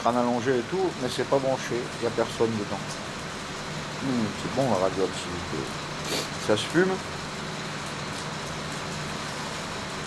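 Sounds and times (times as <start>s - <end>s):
rumble and hiss: 0.0s - 10.0s.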